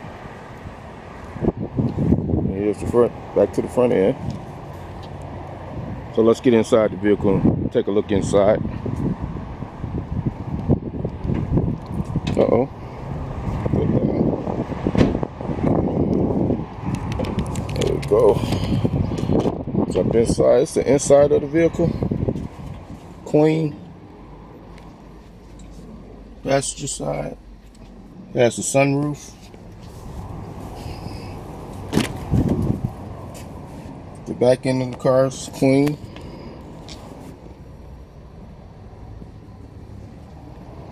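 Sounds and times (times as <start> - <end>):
wind buffeting microphone: 0.6 - 3.3, 7.2 - 23.2, 30.0 - 33.7
car door knocking and rustling: 14.9 - 15.3, 31.9 - 32.8.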